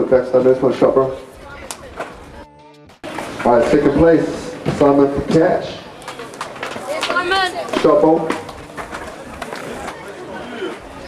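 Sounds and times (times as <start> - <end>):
skateboard clacks on concrete: 4.6 - 10.0.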